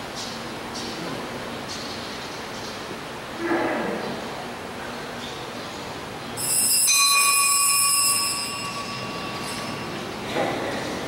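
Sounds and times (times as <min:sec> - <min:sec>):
altar bells ringing: 0:06.4 - 0:11.0.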